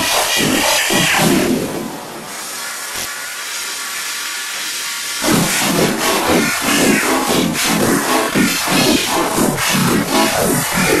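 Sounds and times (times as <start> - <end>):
hissing white-noise effect: 0.0 - 11.0.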